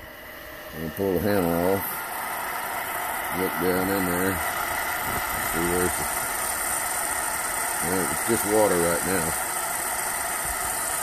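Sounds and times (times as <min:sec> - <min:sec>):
propane torch burning: 0:00.0 - 0:11.0.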